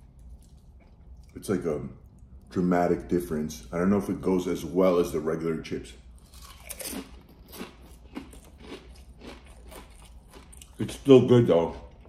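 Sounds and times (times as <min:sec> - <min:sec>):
person crunching chips: 0:06.2 - 0:11.2.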